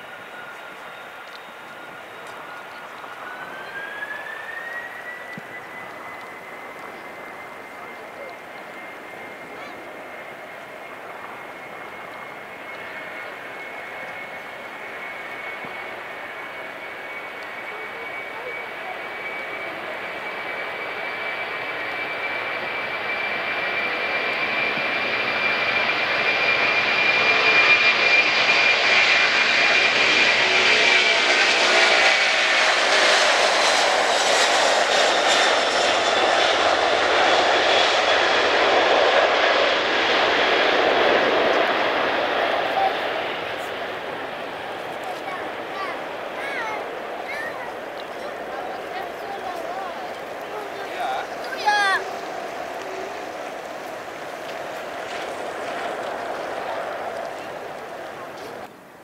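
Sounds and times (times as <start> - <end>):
jet engines at takeoff power: 0.0 - 59.0.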